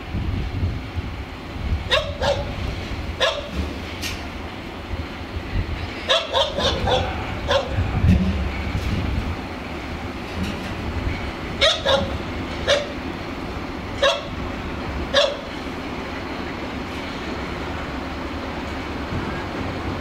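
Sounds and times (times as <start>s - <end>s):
locomotive engine rumble: 0.0s - 20.0s
dog barking: 1.9s - 2.5s, 3.2s - 3.5s, 6.1s - 7.8s, 11.6s - 13.0s, 14.0s - 14.3s, 15.2s - 15.5s.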